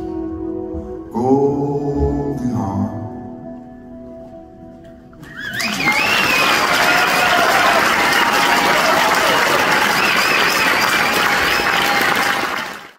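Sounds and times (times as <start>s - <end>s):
wavering whistles: 5.2s - 12.3s
audience applauding: 5.2s - 12.9s.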